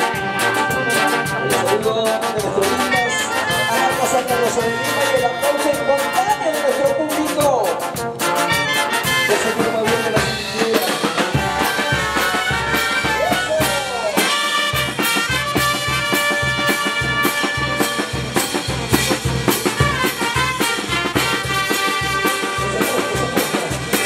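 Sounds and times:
bass drum and percussion: 0.0s - 24.0s
trumpets and trombones: 0.0s - 24.0s.

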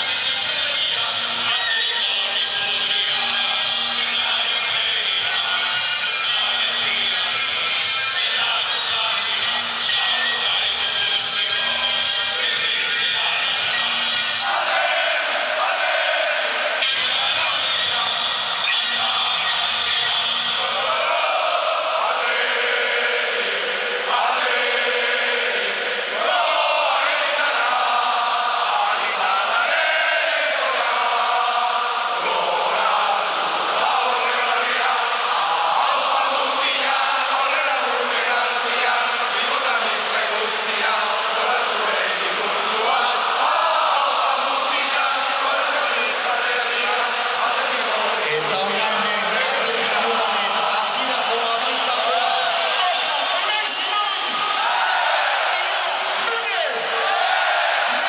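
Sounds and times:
music over public address: 0.0s - 58.0s
stadium crowd singing: 0.0s - 58.0s.

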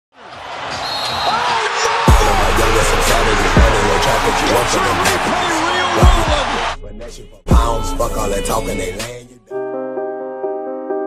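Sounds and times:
basketball arena crowd: 0.1s - 6.8s
basketball court sounds: 0.2s - 6.7s.

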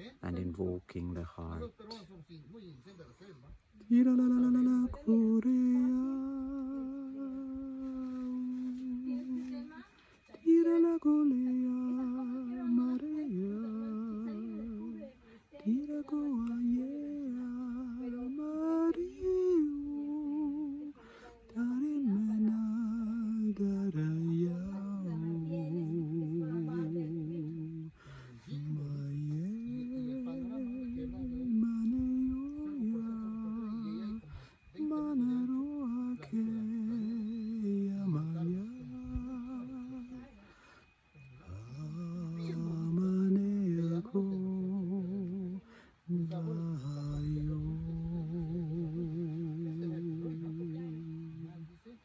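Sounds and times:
man singing long held notes: 3.8s - 9.8s, 10.4s - 52.0s.

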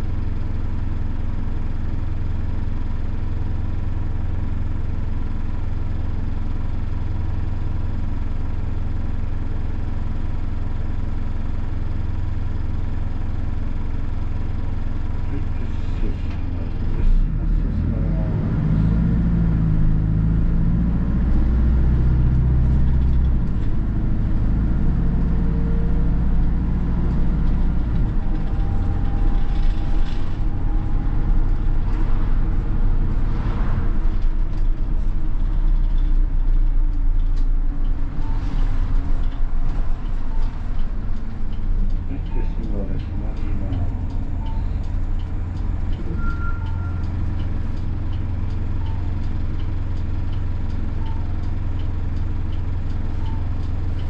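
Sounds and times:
diesel bus engine: 0.0s - 54.0s.

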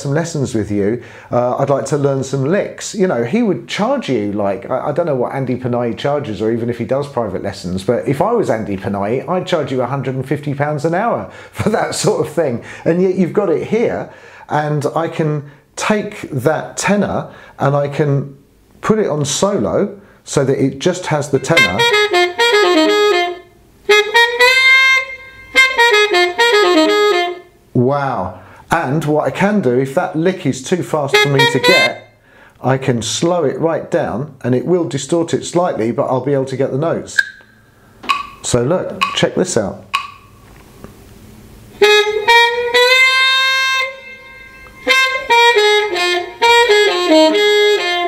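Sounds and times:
tenor saxophone jazz lick: 19.3s - 28.8s, 30.8s - 32.4s, 41.6s - 48.0s.

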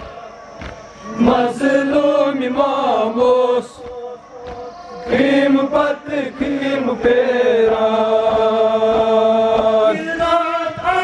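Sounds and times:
male voices chanting: 0.0s - 11.0s
rhythmic chest-beating thumps: 0.0s - 11.0s.

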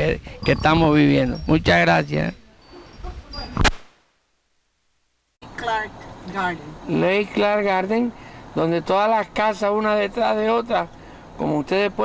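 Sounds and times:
sharp click: 3.6s - 4.0s.

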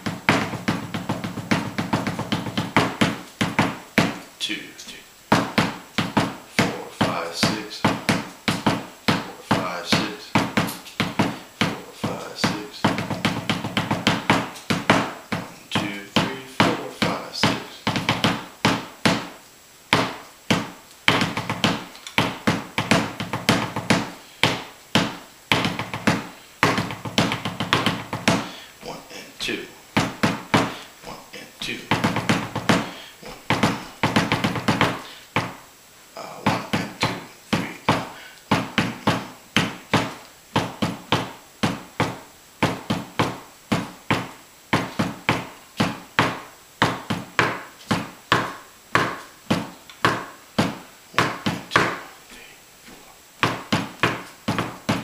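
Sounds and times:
drum mallets striking a tabletop: 0.0s - 4.2s, 5.3s - 28.5s, 30.0s - 30.8s, 31.9s - 35.6s, 36.5s - 52.1s, 53.4s - 55.0s.

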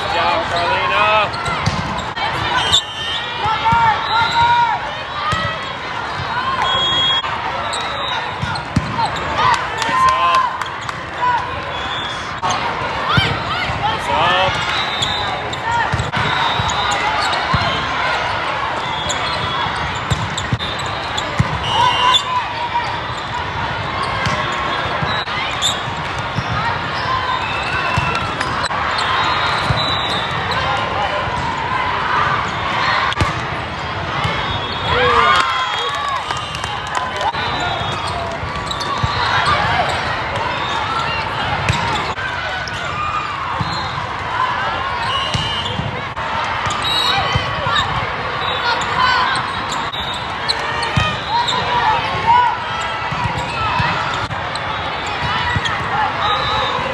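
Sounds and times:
players and spectators shouting: 0.0s - 56.9s
volleyball hits: 1.4s - 2.5s, 15.8s - 17.9s, 19.4s - 21.9s
shoe squeaks on court: 37.8s - 40.0s.

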